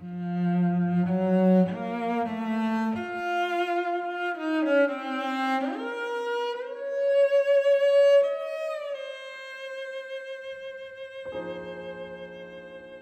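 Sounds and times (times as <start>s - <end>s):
cello melody on bowed strings: 0.0s - 13.0s.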